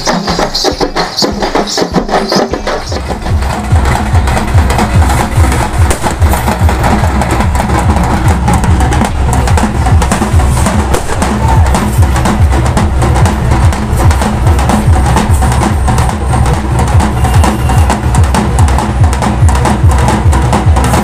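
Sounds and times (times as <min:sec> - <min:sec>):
deep bass beat: 0:00.0 - 0:21.0
music with fast loud drumming: 0:00.0 - 0:21.0.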